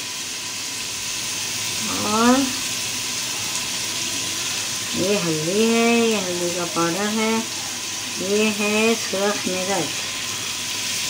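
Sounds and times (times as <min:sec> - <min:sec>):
sizzling hiss from cooking pot: 0:00.0 - 0:11.0.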